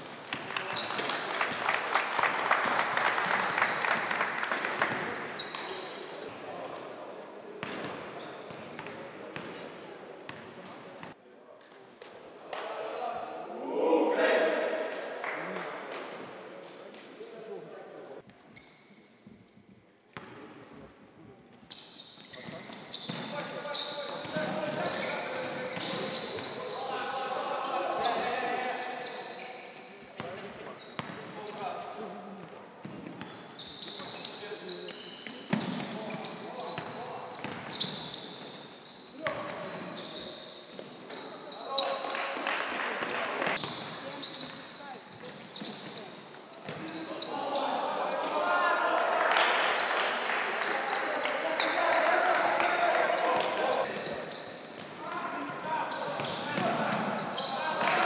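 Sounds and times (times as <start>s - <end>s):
indistinct voices calling out: 13.5s - 14.9s.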